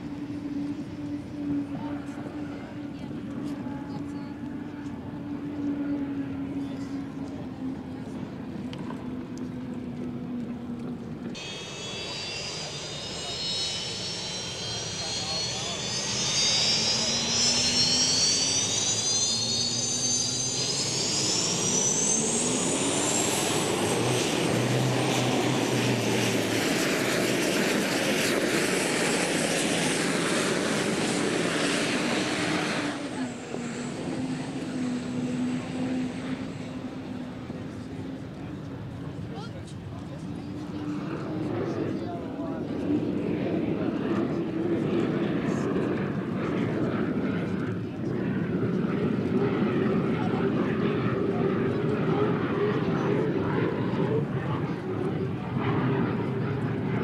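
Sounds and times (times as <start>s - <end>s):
gas-turbine boat engine whine: 0.0s - 57.0s.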